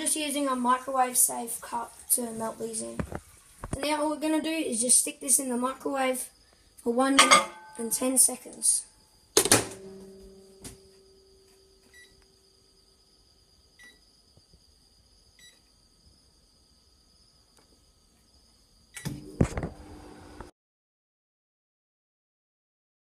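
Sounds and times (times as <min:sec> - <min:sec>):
microwave door shutting: 0:19.0 - 0:19.8
microwave oven humming: 0:19.0 - 0:20.5.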